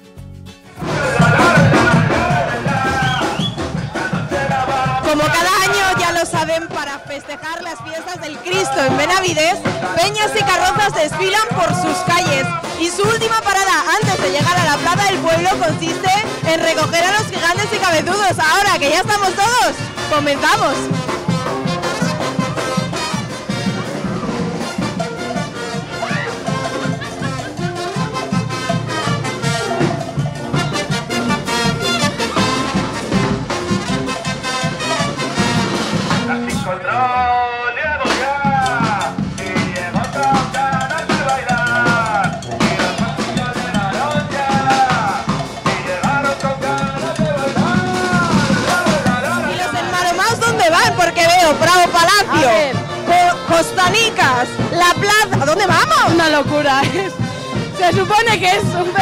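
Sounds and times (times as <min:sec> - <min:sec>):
bass and snare drums: 0:00.0 - 0:37.0, 0:37.9 - 0:59.0
brass band playing: 0:00.7 - 0:59.0.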